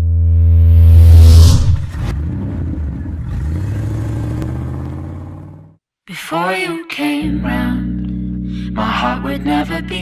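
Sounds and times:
low synthesized drone: 0:00.0 - 0:03.4
low rumbling tone: 0:00.0 - 0:05.7
whooshing hit: 0:00.2 - 0:02.8.

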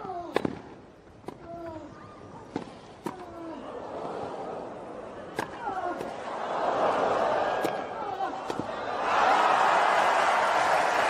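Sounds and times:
tennis ball racket hits: 0:02.5 - 0:03.4, 0:07.5 - 0:08.8.

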